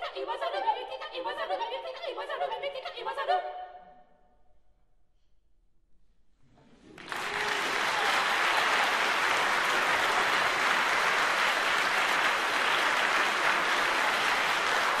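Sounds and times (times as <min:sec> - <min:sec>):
audience applauding: 0:06.8 - 0:15.0.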